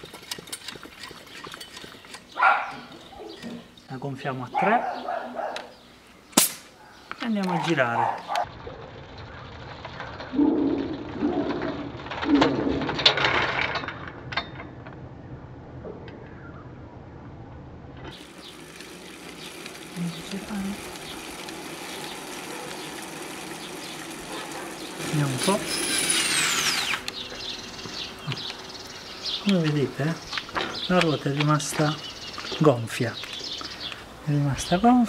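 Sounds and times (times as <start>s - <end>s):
low bird calls: 26.7s - 34.2s.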